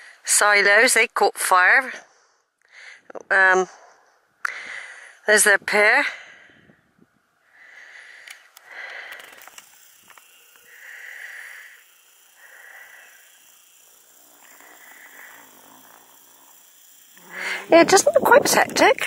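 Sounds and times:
person breathing: 1.9 - 3.1, 3.7 - 5.3, 6.1 - 16.4, 17.2 - 17.7.

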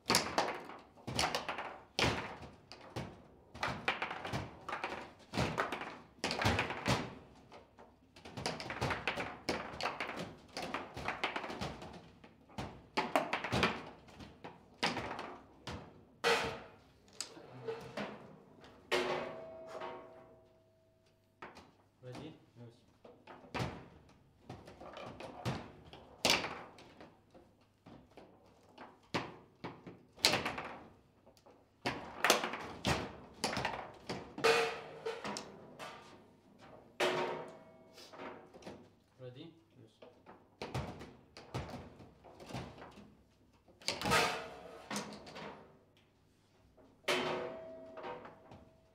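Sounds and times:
foosball ball cracking off figures: 0.0 - 20.5, 23.1 - 39.1, 40.1 - 46.0, 46.9 - 48.9
foosball rods clacking: 0.1 - 7.2, 8.2 - 20.5, 28.9 - 38.7, 40.2 - 45.7, 46.9 - 48.8.

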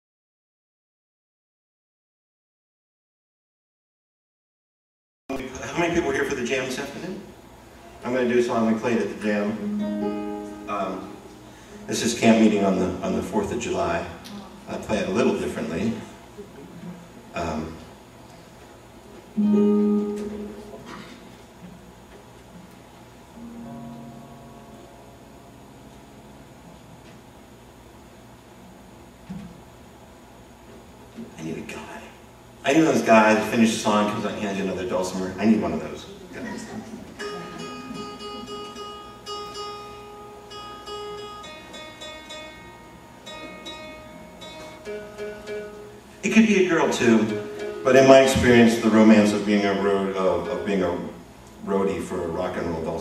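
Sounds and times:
dulcimer chord strummed: 9.5 - 11.5, 19.4 - 20.7, 23.4 - 27.0, 37.2 - 45.9.

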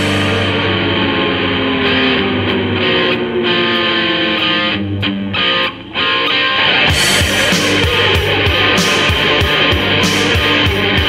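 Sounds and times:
electric guitar: 0.0 - 11.0
heavy metal music: 0.0 - 11.0.

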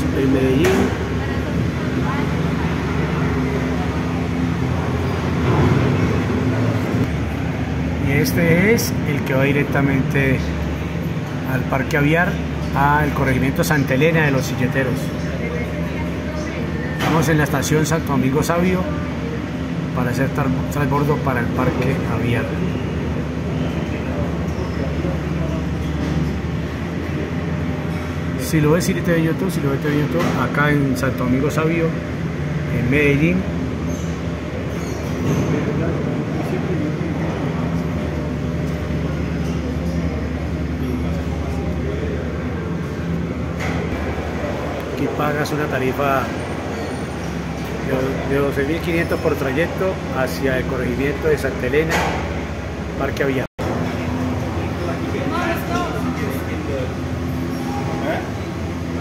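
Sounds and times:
cable car mechanical hum: 0.0 - 59.0
faint voices talking: 0.0 - 59.0
rushing noise in gondola cabin: 0.0 - 59.0.

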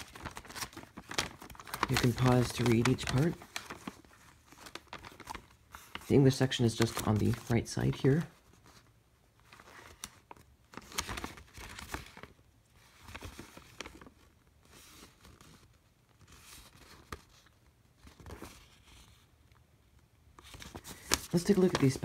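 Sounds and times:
paper rustling and crinkling: 0.0 - 19.4, 20.3 - 22.0.

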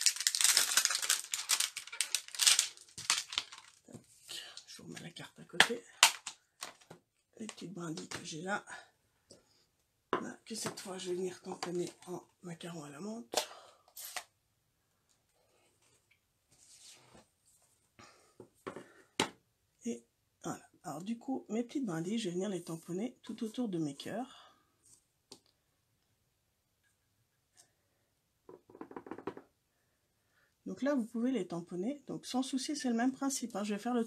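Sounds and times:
plastic packaging crinkling: 0.0 - 4.1, 5.6 - 6.9
plastic knocks and scrapes on table: 18.4 - 19.4, 28.5 - 29.5.

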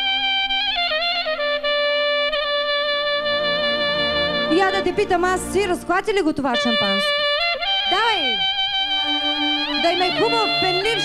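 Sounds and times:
reedy wind instrument melody: 0.0 - 11.0
steady low drone: 3.2 - 5.8.

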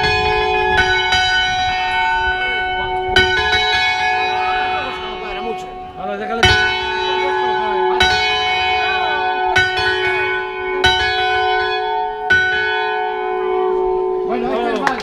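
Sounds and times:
large church bell ringing: 0.0 - 15.0.

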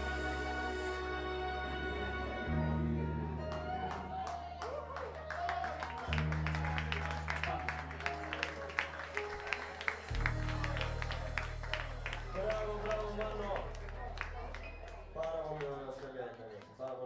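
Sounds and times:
karaoke backing track: 0.0 - 17.0
scattered clapping: 3.5 - 17.0
crowd voices: 3.6 - 16.8.

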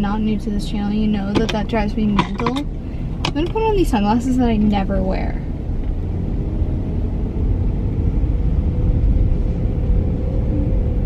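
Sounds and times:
air conditioning hum: 0.0 - 11.0
car engine rumble from cabin: 0.0 - 11.0.

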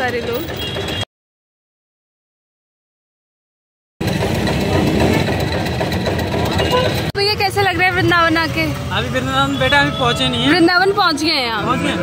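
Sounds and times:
juice crusher engine knocking: 4.0 - 9.2.

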